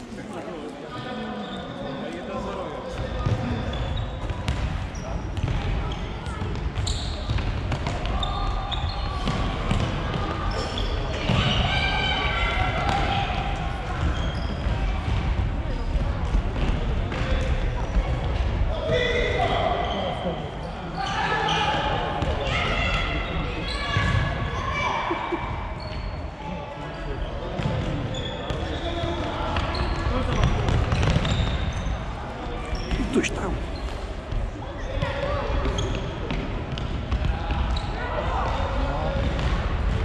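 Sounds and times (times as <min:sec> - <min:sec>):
people shouting in a hall: 0:10.3 - 0:13.6, 0:32.9 - 0:33.8.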